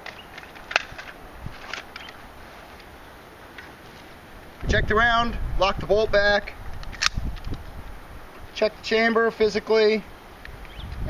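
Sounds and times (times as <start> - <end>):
sharp magazine release click: 0.0 - 2.2, 6.8 - 7.5.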